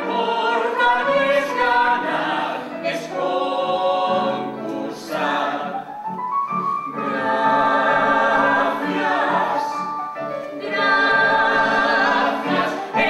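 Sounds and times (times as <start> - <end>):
choir singing long notes: 0.0 - 5.9, 6.9 - 13.0.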